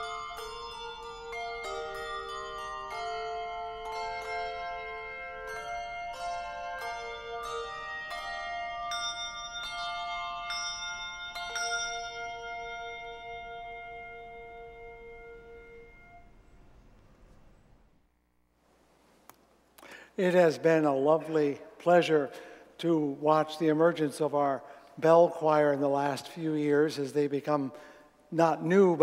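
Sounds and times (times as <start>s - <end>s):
handbell choir playing: 0.0s - 16.3s.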